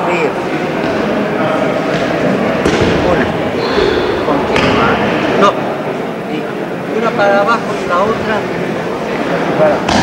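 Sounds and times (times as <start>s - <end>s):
overlapping voices in gym hall: 0.4s - 6.8s, 8.3s - 10.0s.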